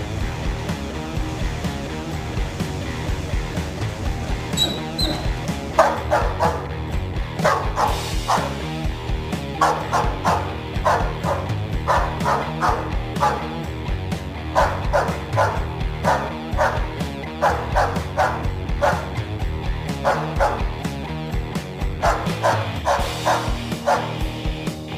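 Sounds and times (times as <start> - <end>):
background music: 0.0 - 24.9
dog barking: 4.6 - 6.8, 7.4 - 8.7, 9.6 - 13.6, 14.5 - 19.2, 20.0 - 20.7, 22.0 - 24.2.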